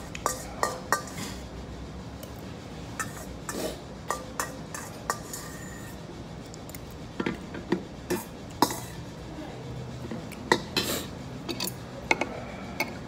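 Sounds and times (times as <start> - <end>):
utensil clinking on steel bowl: 0.0 - 1.4, 3.0 - 6.0, 8.1 - 9.1.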